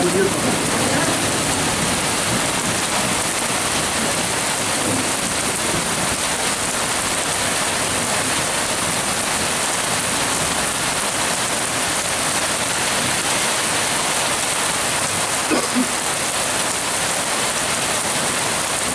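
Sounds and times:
heavy rain on pavement: 0:00.0 - 0:18.9.

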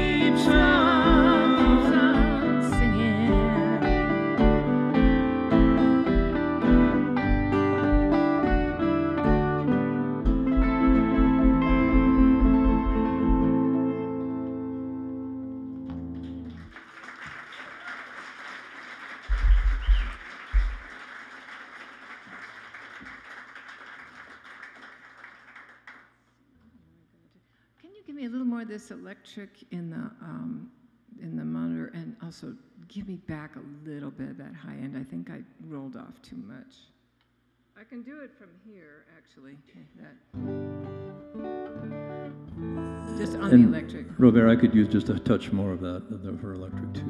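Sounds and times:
steady low beat: 0:00.0 - 0:13.8
acoustic and electric guitars: 0:00.0 - 0:16.8, 0:39.8 - 0:47.0
audience applause: 0:16.2 - 0:26.1.

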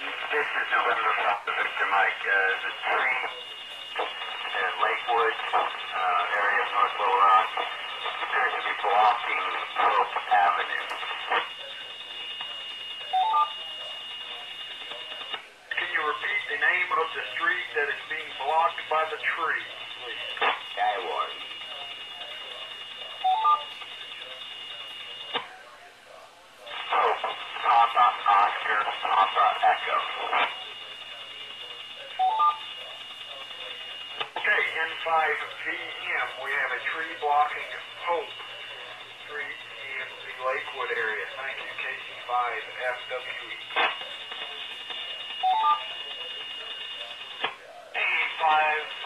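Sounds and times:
radio hiss: 0:00.0 - 0:49.0
radio voice transmissions: 0:00.0 - 0:49.0.

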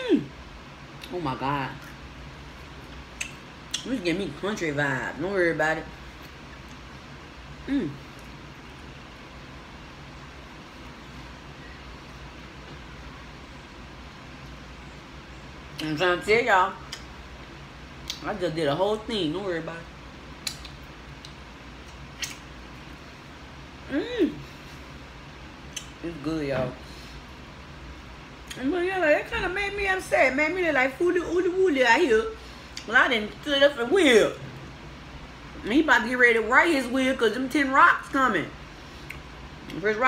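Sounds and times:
person humming mmm: 0:00.0 - 0:00.4, 0:07.6 - 0:08.2, 0:23.9 - 0:24.6
steady low hum: 0:00.0 - 0:40.0
chewing fried food: 0:01.8 - 0:03.9, 0:06.0 - 0:07.2
mouth smacks: 0:02.9 - 0:03.9, 0:20.4 - 0:22.5, 0:25.7 - 0:26.0, 0:39.0 - 0:39.3.

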